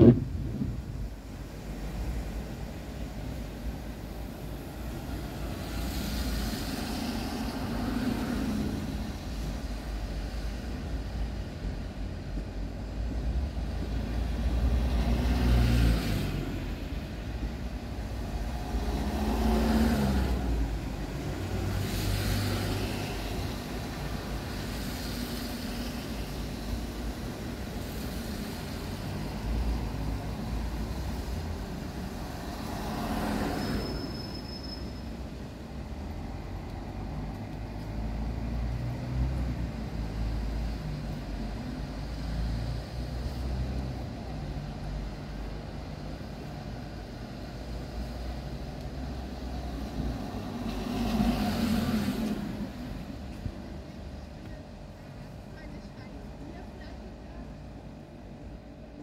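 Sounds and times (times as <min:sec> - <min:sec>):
cars passing: 0:00.0 - 0:54.4
low traffic rumble: 0:00.0 - 0:59.0.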